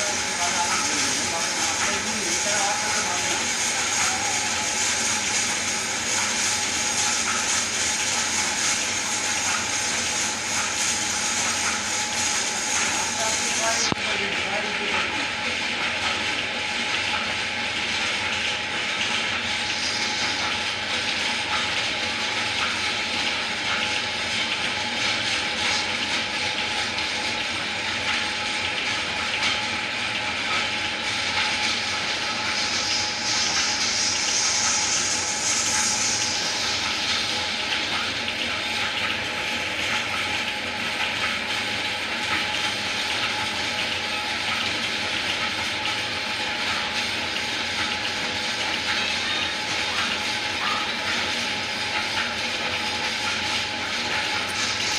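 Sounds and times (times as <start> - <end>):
lathe motor hum: 0.0 - 16.7, 29.6 - 45.7, 46.3 - 54.9.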